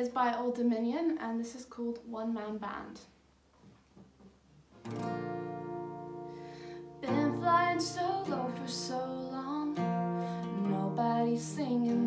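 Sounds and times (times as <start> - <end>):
acoustic guitar chord strummed: 4.8 - 12.0.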